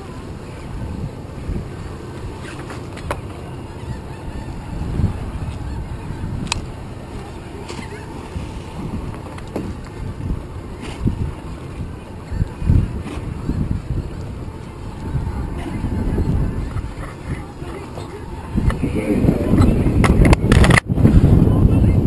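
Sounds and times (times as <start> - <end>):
seabirds calling: 0.0 - 20.0
water lapping around boat: 0.0 - 21.7
wind buffeting microphone: 0.0 - 22.0.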